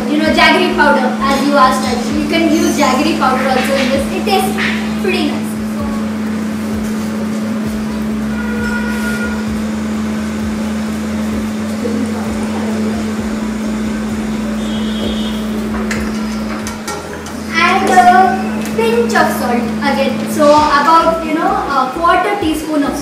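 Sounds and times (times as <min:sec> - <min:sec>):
faint voices: 0:00.0 - 0:08.4, 0:09.0 - 0:23.0
room noise hiss: 0:00.0 - 0:23.0
steady low hum: 0:00.0 - 0:23.0.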